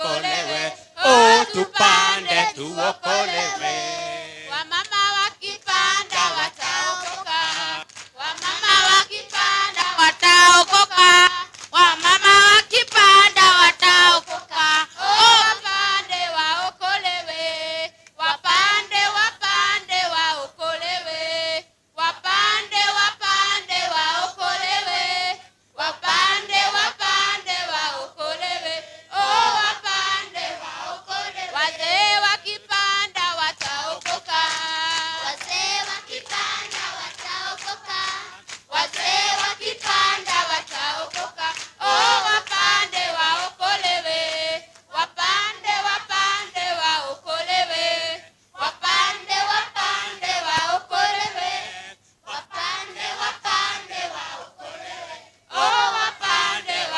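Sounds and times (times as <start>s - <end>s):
children singing: 0.0s - 7.8s
children singing in chorus: 0.0s - 11.3s, 22.2s - 56.9s.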